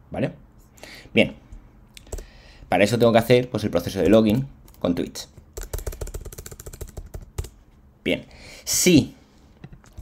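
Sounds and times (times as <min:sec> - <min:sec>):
rapid typing on keyboard: 0:02.0 - 0:02.3, 0:02.9 - 0:07.6.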